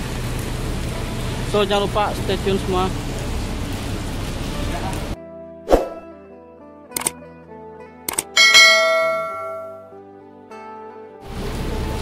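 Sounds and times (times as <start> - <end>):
notification bell chime: 8.4 - 9.9.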